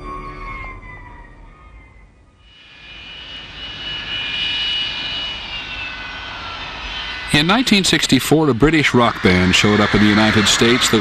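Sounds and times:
jet engines rushing and whining: 0:00.0 - 0:11.0.

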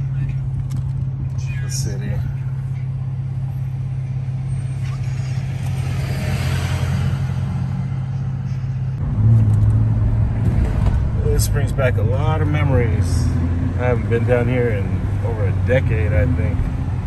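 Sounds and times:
car engine hum: 0:00.0 - 0:17.0
road noise: 0:00.0 - 0:17.0.

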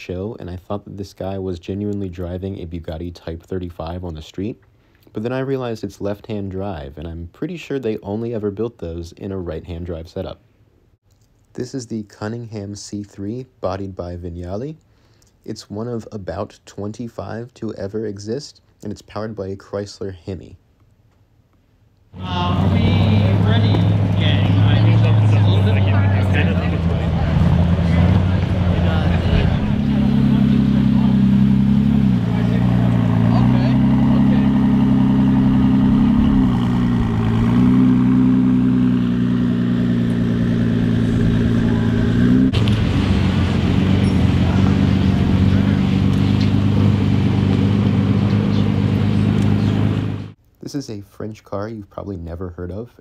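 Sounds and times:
car engines driving past: 0:22.2 - 0:50.4.

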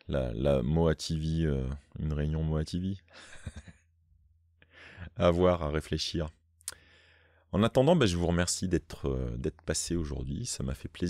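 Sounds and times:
man laughing: 0:03.1 - 0:03.8
short breath in: 0:06.7 - 0:07.4.

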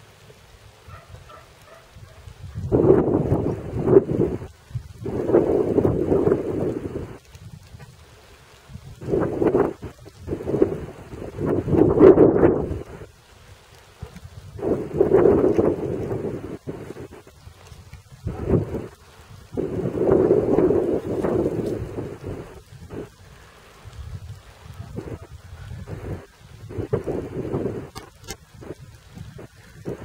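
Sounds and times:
rain noise: 0:00.0 - 0:30.0
wind buffeting microphone: 0:00.9 - 0:30.0.

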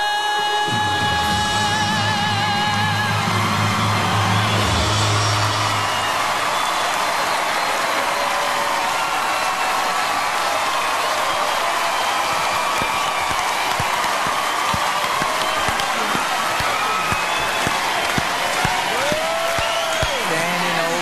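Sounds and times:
audience applauding and cheering: 0:00.0 - 0:21.0
audience shouts: 0:01.3 - 0:21.0.

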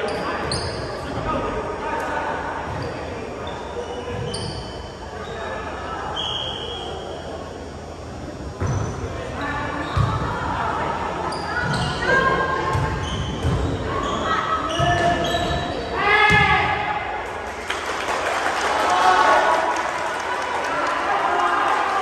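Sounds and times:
sneakers squeaking on hardwood: 0:00.0 - 0:01.1, 0:02.7 - 0:05.5, 0:08.6 - 0:10.3, 0:11.3 - 0:16.5
players shouting: 0:15.9 - 0:17.2.

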